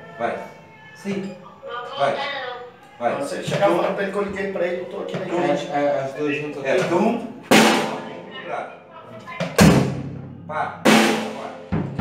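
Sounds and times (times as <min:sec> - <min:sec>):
cymbal crashes with bass drum: 0:07.5 - 0:08.1
light drum hit: 0:09.4 - 0:10.2.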